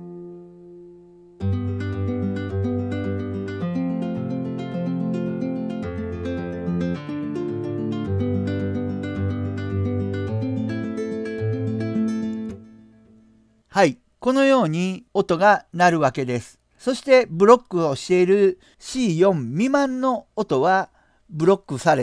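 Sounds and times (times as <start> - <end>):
picked nylon-string guitar: 0.0 - 14.0.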